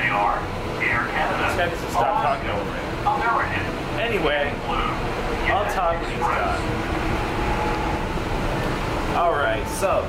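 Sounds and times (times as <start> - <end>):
faint steady whine: 0.0 - 10.0
train car low rumble: 0.0 - 10.0.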